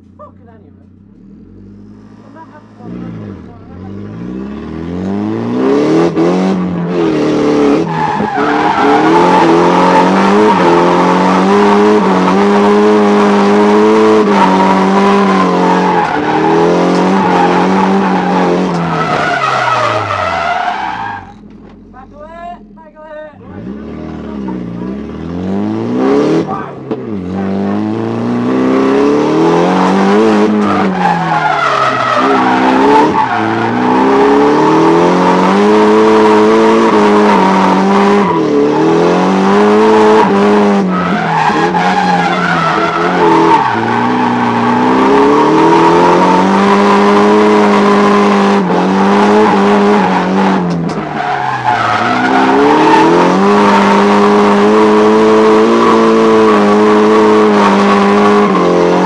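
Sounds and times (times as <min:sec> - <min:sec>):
car engine revving: 0:00.0 - 0:22.8, 0:23.4 - 0:59.0
tyres skidding: 0:00.0 - 0:59.0.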